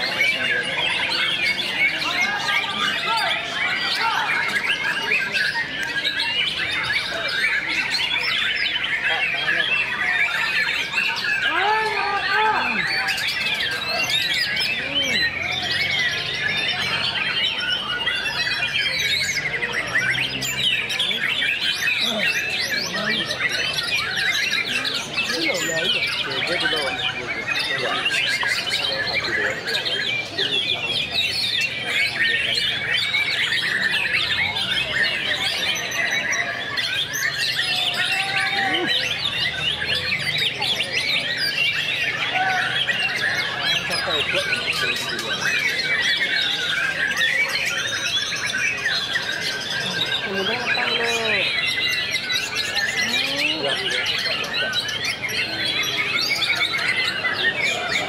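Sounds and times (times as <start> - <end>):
caged birds singing: 0.0 - 58.0.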